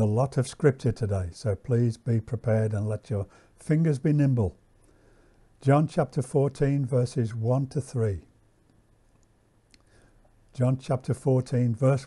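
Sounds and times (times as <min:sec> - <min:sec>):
man speaking: 0:00.0 - 0:04.6, 0:05.6 - 0:08.3, 0:10.5 - 0:12.0.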